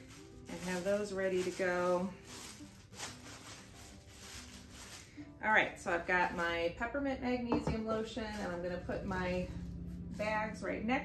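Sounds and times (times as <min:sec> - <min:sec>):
plastic bags crinkling: 0:00.0 - 0:06.7, 0:07.8 - 0:10.4.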